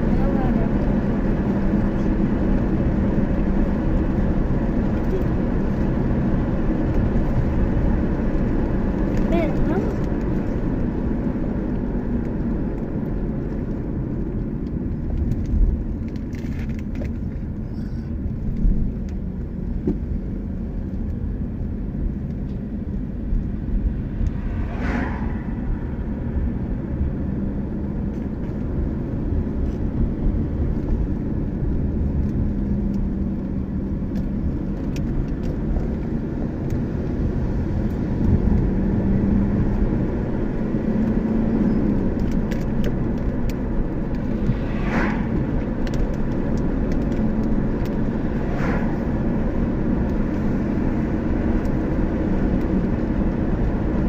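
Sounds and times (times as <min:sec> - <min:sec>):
car engine and tyres rumbling: 0:00.0 - 0:54.0
passing vehicles whooshing: 0:17.5 - 0:54.0.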